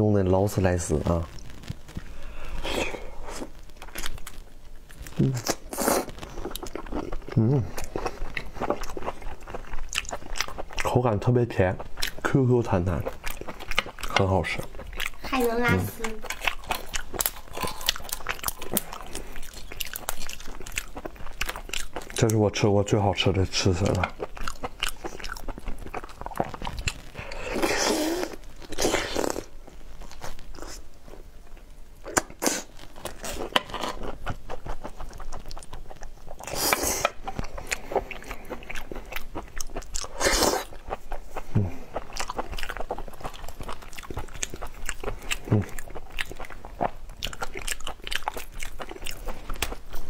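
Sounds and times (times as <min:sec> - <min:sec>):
prawn shell crackling: 0:00.5 - 0:10.6
chewing prawn with wet clicks: 0:06.2 - 0:10.9, 0:13.0 - 0:15.3, 0:16.0 - 0:22.4, 0:33.1 - 0:50.0.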